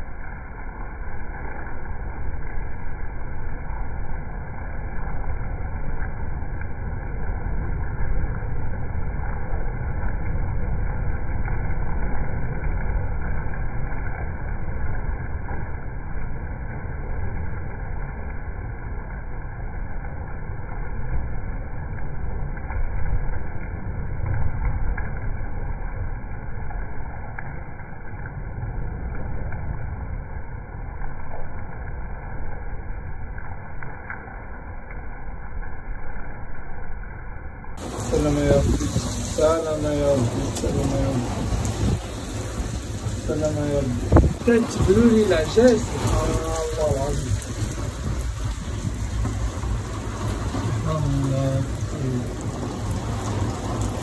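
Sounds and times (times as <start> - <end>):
rush of wind and rain: 0.0 - 54.0.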